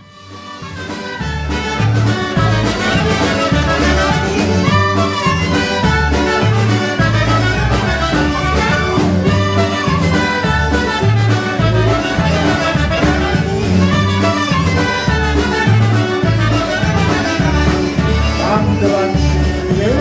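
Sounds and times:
clarinet and brass lead: 0:00.0 - 0:20.0
polka band playing: 0:00.0 - 0:20.0.

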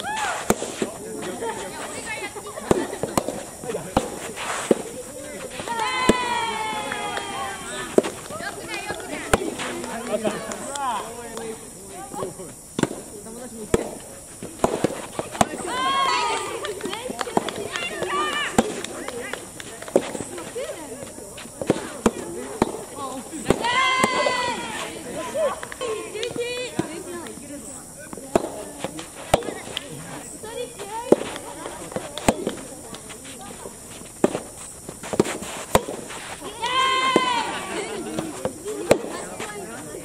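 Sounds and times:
tennis rackets hitting balls: 0:00.0 - 0:40.0.

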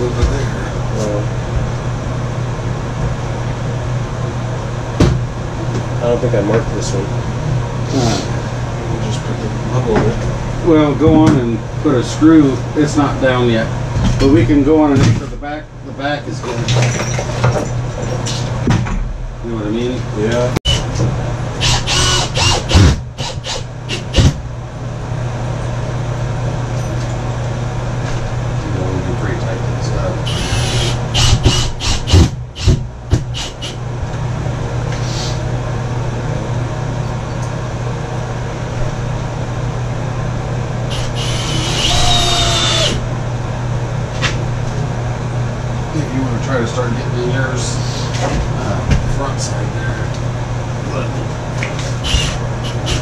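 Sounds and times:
steady low hum: 0:00.0 - 0:53.0
cordless drill whirring: 0:21.6 - 0:24.2, 0:30.3 - 0:32.7, 0:33.4 - 0:33.8, 0:40.9 - 0:43.0, 0:52.0 - 0:53.0.

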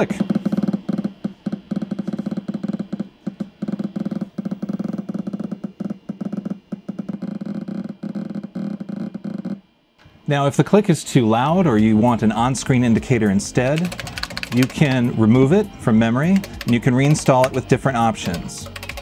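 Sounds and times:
rapid irregular speaker clicks: 0:13.4 - 0:15.2, 0:16.3 - 0:19.0.

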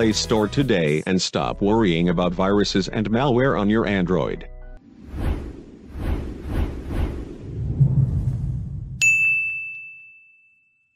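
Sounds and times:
low rumble: 0:04.8 - 0:09.0
bright metallic ding: 0:09.0 - 0:10.8.

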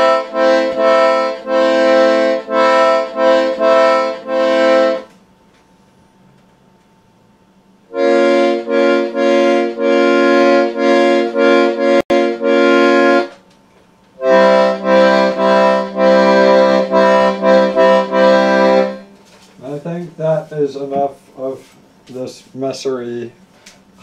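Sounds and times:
accordion pulsed chords: 0:00.0 - 0:05.2, 0:07.8 - 0:13.4, 0:14.2 - 0:20.6.

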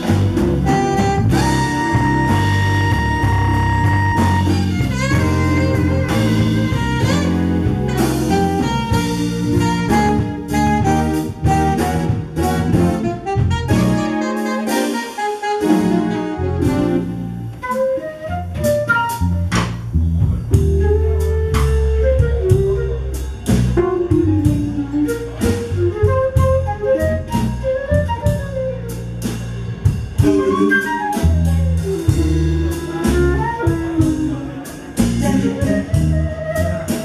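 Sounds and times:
saxophone: 0:00.0 - 0:19.4, 0:20.6 - 0:29.2, 0:30.2 - 0:37.0
flute melody: 0:00.0 - 0:19.9, 0:20.5 - 0:29.5, 0:30.2 - 0:37.0
jazz blues band playing: 0:00.0 - 0:37.0.

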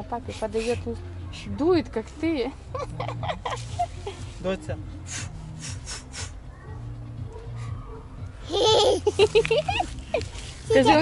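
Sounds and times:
soft rustling: 0:09.1 - 0:11.0.

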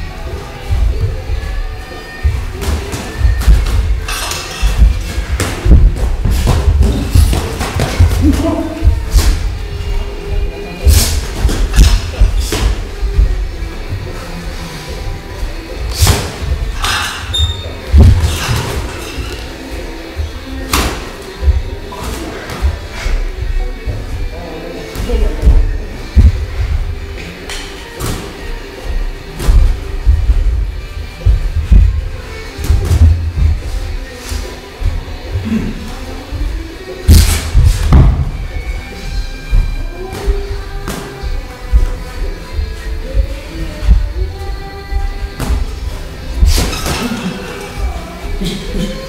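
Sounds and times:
music playing: 0:00.0 - 0:49.0.

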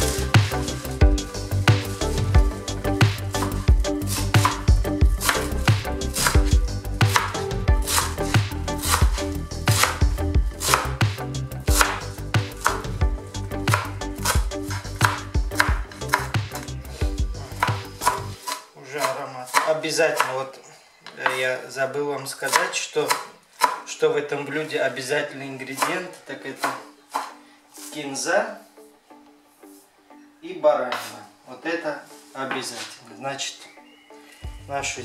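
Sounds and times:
knife chopping on wooden board: 0:04.1 - 0:05.6, 0:06.2 - 0:10.0, 0:10.6 - 0:10.9, 0:11.7 - 0:12.8, 0:13.7 - 0:16.6, 0:17.6 - 0:20.3, 0:22.5 - 0:23.8, 0:25.8 - 0:26.0, 0:26.6 - 0:27.9.

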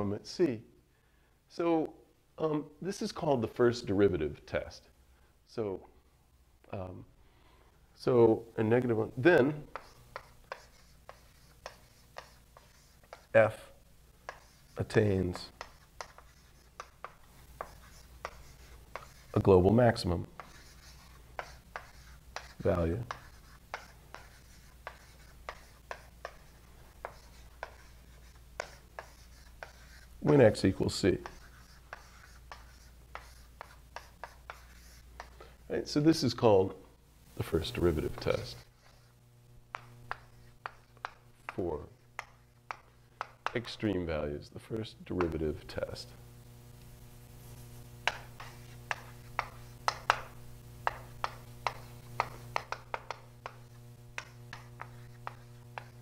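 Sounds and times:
low room hum: 0:00.0 - 0:56.0
writing tool taps and scrapes: 0:14.2 - 0:19.4, 0:20.4 - 0:30.4, 0:39.7 - 0:41.6, 0:42.2 - 0:43.8, 0:48.0 - 0:56.0
pen tapping on writing surface: 0:48.0 - 0:53.6.

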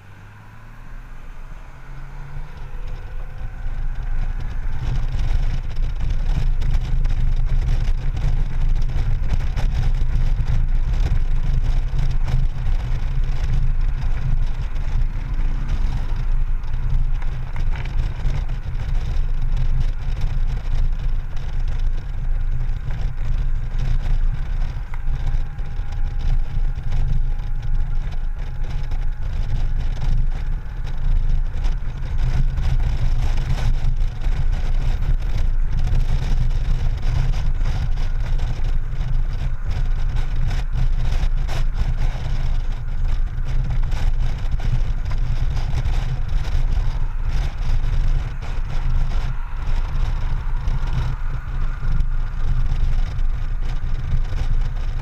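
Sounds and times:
motorcycle engine drone: 0:00.0 - 0:55.0
wind buffeting microphone: 0:00.0 - 0:55.0.

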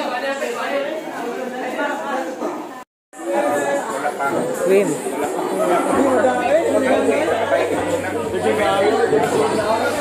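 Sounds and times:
group chatter: 0:00.0 - 0:10.0
low steady hum: 0:05.8 - 0:10.0.

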